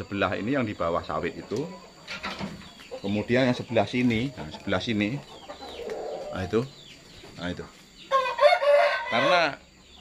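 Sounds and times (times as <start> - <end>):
rooster crowing: 8.1 - 9.6.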